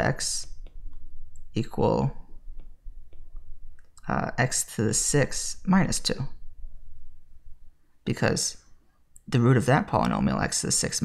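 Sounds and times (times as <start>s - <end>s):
stylus tapping pen tablet: 0.6s - 1.5s, 2.3s - 4.0s.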